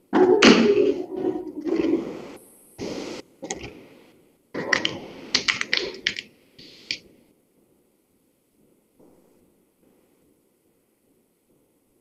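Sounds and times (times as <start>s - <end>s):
computer keyboard typing: 4.6s - 7.0s.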